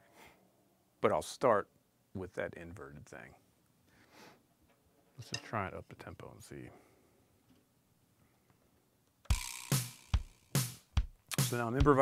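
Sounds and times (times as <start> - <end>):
drum strokes: 9.3 - 12.0
ringing cymbal wash: 9.4 - 10.6.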